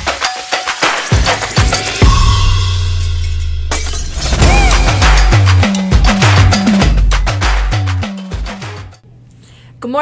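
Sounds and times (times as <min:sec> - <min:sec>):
intro music with held bass: 0:00.0 - 0:09.0
glass shattering effect: 0:00.1 - 0:07.0.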